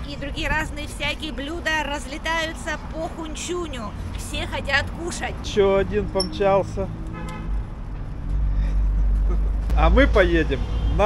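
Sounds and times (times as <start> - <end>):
street traffic: 0.0 - 11.0
vehicle horn toot: 7.1 - 7.6, 10.6 - 11.0.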